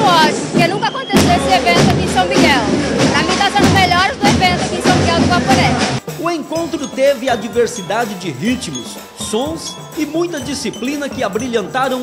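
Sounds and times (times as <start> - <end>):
woman talking: 0.0 - 5.8
fanfare band music: 0.0 - 12.0.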